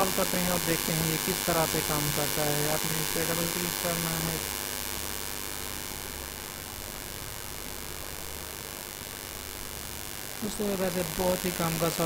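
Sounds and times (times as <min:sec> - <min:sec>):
constant hiss: 0:00.0 - 0:12.0
low mains hum: 0:00.0 - 0:12.0.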